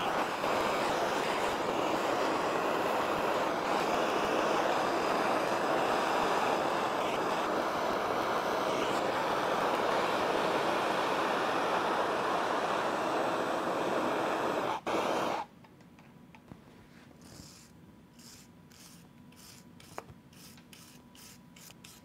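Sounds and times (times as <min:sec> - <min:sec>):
gas torch rushing: 0:00.0 - 0:15.5.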